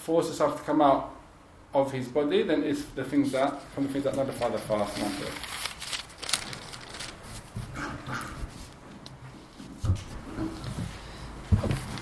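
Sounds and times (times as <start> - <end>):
paper rustling: 3.8 - 7.8, 11.5 - 12.0.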